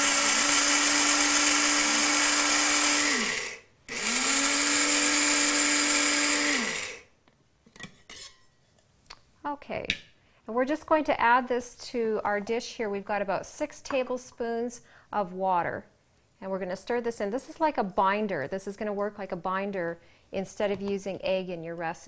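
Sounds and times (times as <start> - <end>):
coffee grinder motor whine: 0.0 - 7.1.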